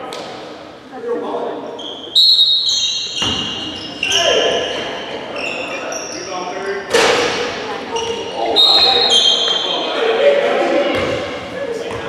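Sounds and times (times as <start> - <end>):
sneakers squeaking on hardwood: 1.8 - 9.9.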